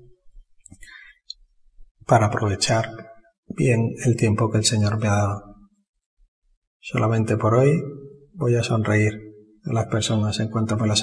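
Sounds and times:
man breathing softly: 0.7s - 1.3s.

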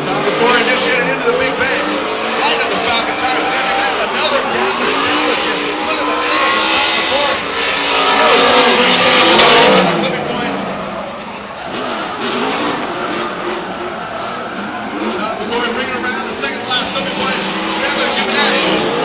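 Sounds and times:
car engines revving hard: 0.0s - 19.0s.

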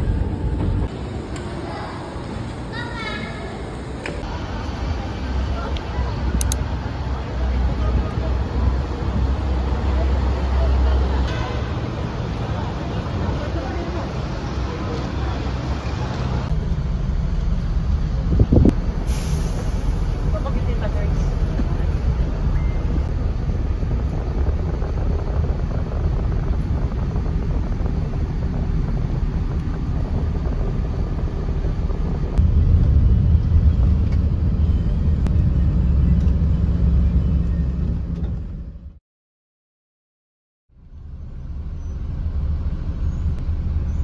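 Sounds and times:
bus engine idling rumble: 0.0s - 39.0s, 40.8s - 44.0s.

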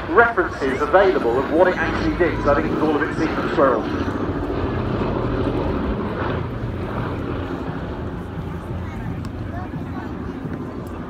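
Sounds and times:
propeller plane engines droning: 0.0s - 11.0s.

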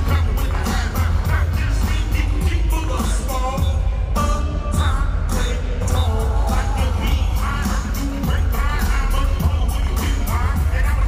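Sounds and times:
hip-hop music over loudspeakers: 0.0s - 11.0s
person singing: 0.0s - 11.0s.

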